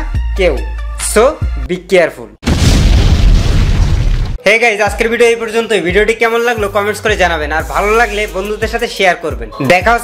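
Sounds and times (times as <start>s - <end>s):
explosion boom: 2.4s - 4.4s.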